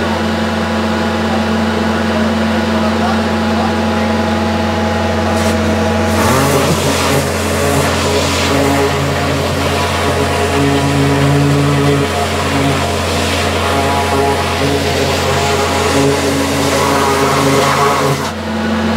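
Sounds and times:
truck engine drone: 0.0 - 18.9.

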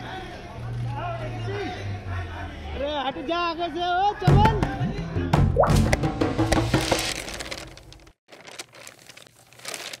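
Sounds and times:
paper crinkling and rustling: 6.5 - 10.0.

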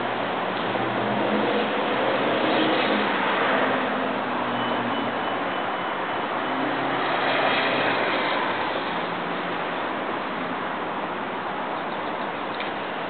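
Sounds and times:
vehicle noise rushing: 0.0 - 11.8.

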